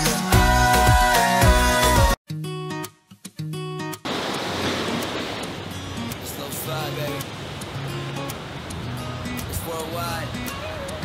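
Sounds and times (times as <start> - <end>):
wind: 4.0 - 11.0
surf washing against rocks: 4.1 - 11.0.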